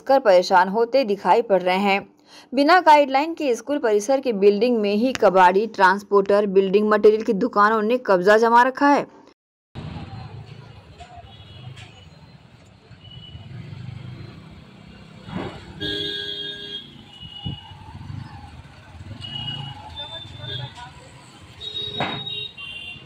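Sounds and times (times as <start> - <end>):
motorcycles and scooters passing: 11.6 - 21.6.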